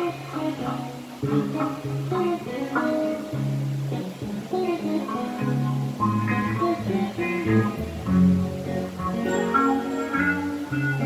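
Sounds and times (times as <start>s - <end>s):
live band music with guitar: 0.0s - 11.0s.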